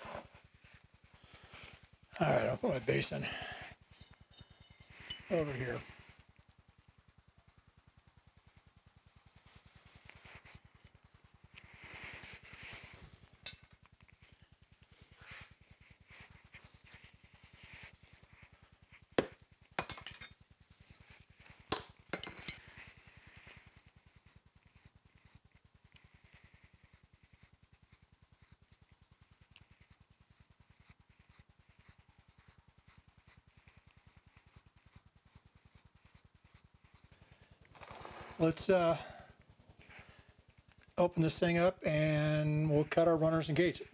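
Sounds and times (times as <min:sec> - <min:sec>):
sand scraping and rustling: 0:37.8 - 0:39.0.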